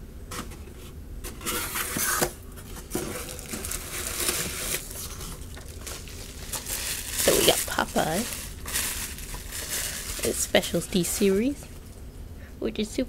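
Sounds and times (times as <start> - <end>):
bubble wrap rustling and crinkling: 1.3 - 12.0.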